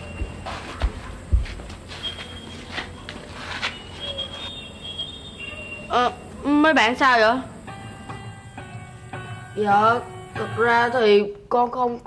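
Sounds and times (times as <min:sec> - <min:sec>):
soft thumps and shuffles: 0:00.0 - 0:04.7
insect chirps: 0:01.8 - 0:11.6.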